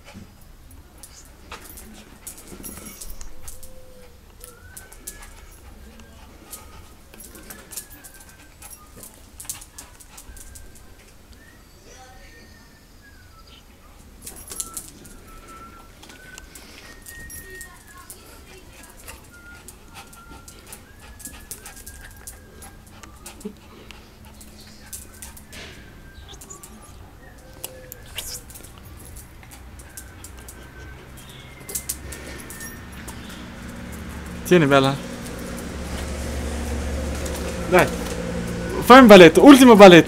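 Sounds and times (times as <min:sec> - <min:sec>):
small dog whimpering: 0:01.0 - 0:12.6, 0:14.4 - 0:34.1.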